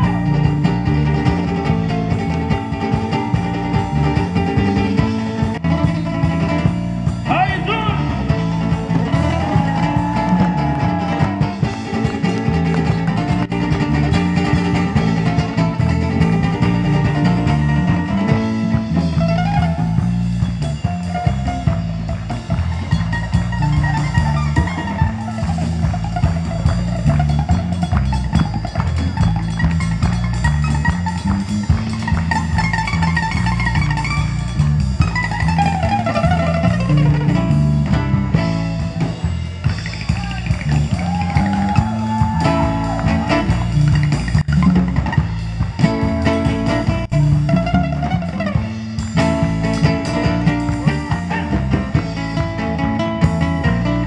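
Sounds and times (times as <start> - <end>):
drum kit: 0.0 - 54.0
electric bass: 0.0 - 54.0
plucked-string lead solo: 0.0 - 54.0.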